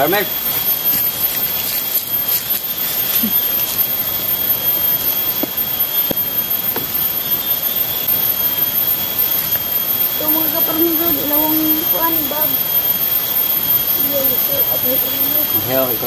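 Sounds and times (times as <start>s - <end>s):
constant high whine: 0.0s - 16.0s
steady hiss: 0.0s - 16.0s.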